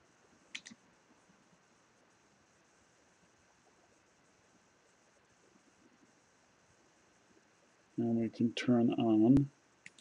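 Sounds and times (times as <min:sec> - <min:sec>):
computer mouse clicks: 0:00.5 - 0:00.8.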